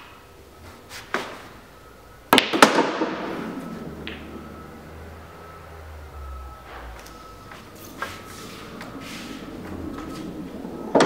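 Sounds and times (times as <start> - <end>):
cue tip striking ball: 2.3 - 3.3, 4.0 - 4.4
balls clattering and rolling: 2.3 - 4.6.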